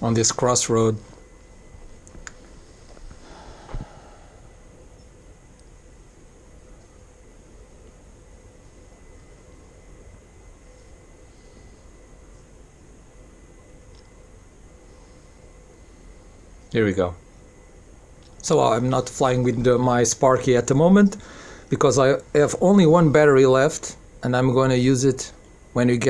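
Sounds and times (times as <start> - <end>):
faint steady hiss: 0.0 - 26.0.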